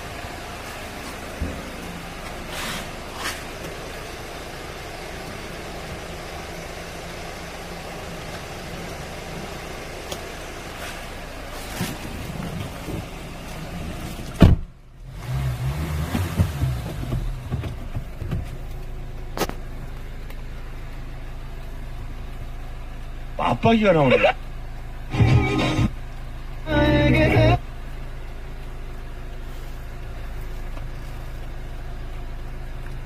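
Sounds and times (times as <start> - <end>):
car engine starting and idling: 0.0 - 33.0
low cabin hum: 0.0 - 33.0.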